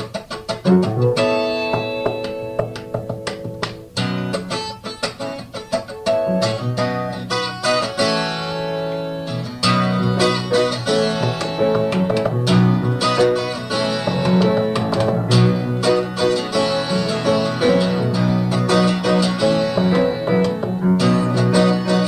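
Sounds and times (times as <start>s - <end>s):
acoustic guitar: 0.0s - 22.0s
piano: 0.0s - 22.0s.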